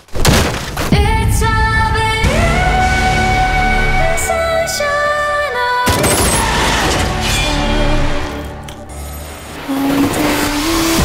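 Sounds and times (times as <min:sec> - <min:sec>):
steady tone stepping up in pitch: 0:01.4 - 0:05.8.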